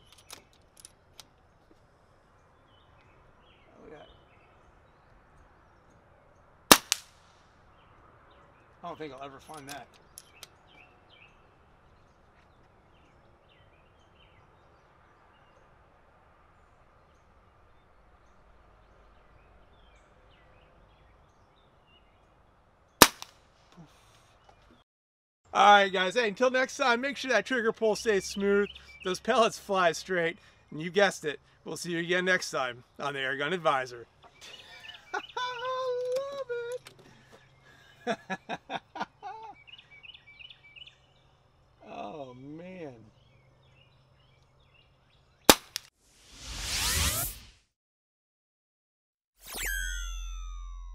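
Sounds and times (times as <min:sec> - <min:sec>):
faint birds chirping: 0:00.0 - 0:06.7, 0:07.4 - 0:23.0, 0:23.6 - 0:24.8, 0:25.5 - 0:45.5
air pistol shot: 0:06.7 - 0:07.4, 0:23.0 - 0:23.4, 0:45.5 - 0:45.9
man laughing: 0:34.4 - 0:37.0, 0:37.7 - 0:39.7.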